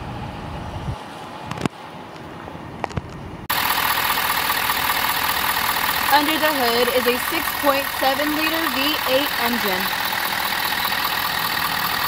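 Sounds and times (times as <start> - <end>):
diesel engine idling: 3.5 - 12.0.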